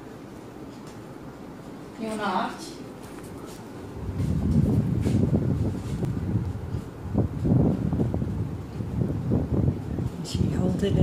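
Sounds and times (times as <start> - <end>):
low rumble on microphone: 3.8 - 11.0.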